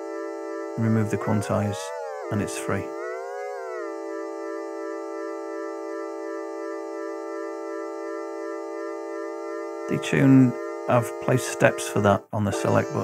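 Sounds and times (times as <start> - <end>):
sustained synthesizer tone: 0.0 - 13.0.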